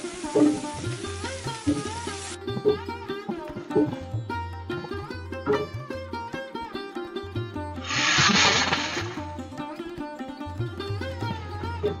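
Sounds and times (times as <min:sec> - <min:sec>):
sitar and tabla music: 0:00.0 - 0:12.0
loud hissing noise: 0:07.8 - 0:09.2.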